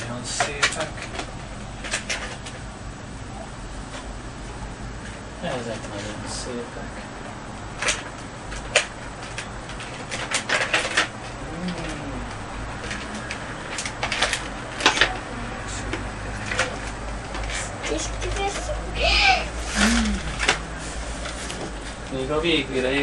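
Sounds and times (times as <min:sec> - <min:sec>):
handling clicks and knocks: 0:00.0 - 0:02.6.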